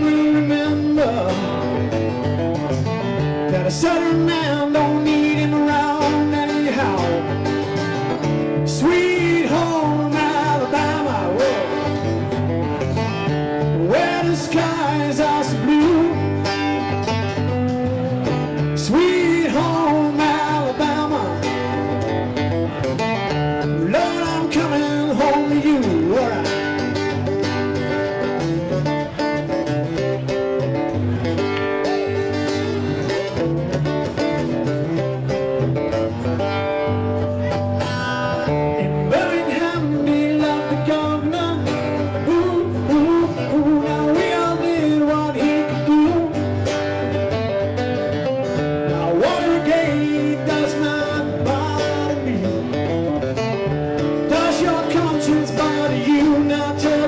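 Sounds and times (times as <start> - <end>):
person singing: 0.0 - 1.8, 3.4 - 7.5, 8.6 - 12.3, 13.6 - 17.0, 18.2 - 22.1, 23.7 - 26.8, 37.4 - 46.6, 48.8 - 52.8, 54.2 - 57.0
country band music: 0.0 - 57.0.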